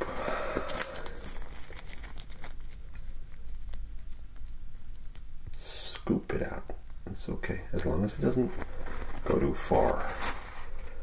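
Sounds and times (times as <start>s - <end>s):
small clicks and crackles: 0.6s - 5.3s.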